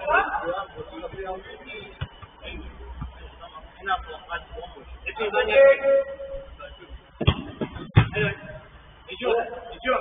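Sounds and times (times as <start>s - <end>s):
football being struck: 7.2s - 8.4s.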